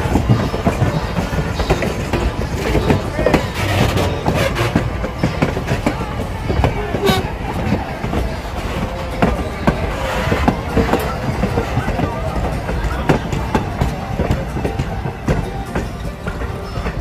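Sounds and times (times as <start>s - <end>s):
train wheels rumbling on rail: 0.0s - 17.0s
wheels clacking over rail joints: 0.0s - 17.0s.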